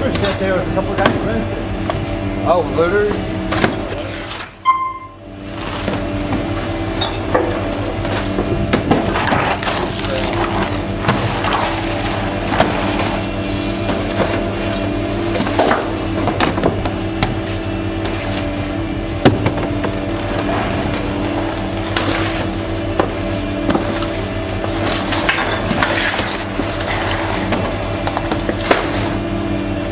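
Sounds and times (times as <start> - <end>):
garbage truck engine running: 0.0 - 29.9
trash clattering into hopper: 3.2 - 18.6, 19.2 - 29.4.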